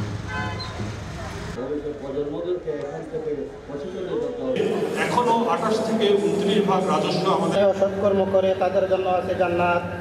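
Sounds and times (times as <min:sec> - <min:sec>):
traffic rumble: 0:00.0 - 0:10.0
car horn toot: 0:00.2 - 0:00.9
man speaking: 0:01.6 - 0:09.9.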